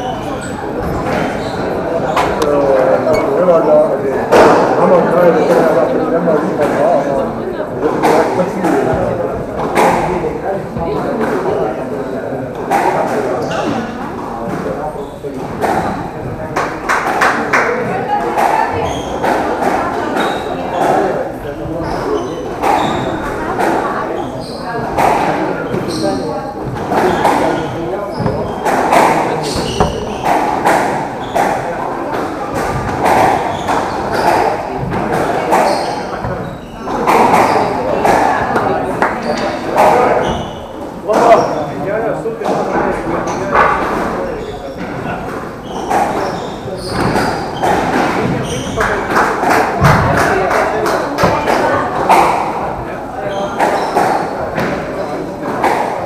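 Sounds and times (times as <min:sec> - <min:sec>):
squash ball hitting rackets and walls: 0:04.3 - 0:05.8, 0:07.8 - 0:11.7, 0:12.5 - 0:41.5, 0:42.4 - 0:56.0.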